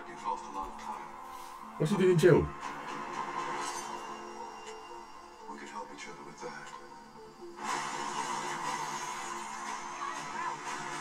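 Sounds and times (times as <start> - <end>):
movie trailer music: 0.0 - 11.0.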